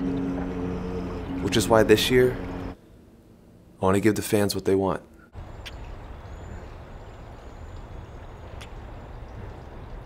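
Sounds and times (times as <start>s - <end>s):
steady low rumble: 0.0s - 3.8s.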